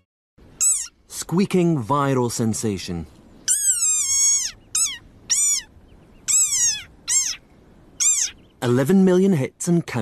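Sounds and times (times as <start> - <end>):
frog squeaking: 0.6 - 1.1, 3.4 - 8.6.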